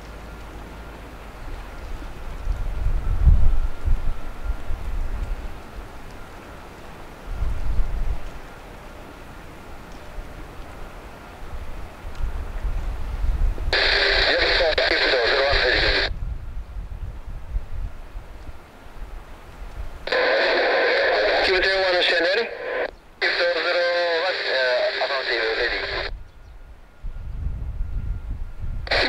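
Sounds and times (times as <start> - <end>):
faint steady whine: 0.0 - 29.0
wind buffeting microphone: 1.4 - 6.2, 7.2 - 8.5, 11.4 - 20.2, 25.8 - 29.0
radio transmission through speaker: 13.7 - 16.1, 20.0 - 26.1.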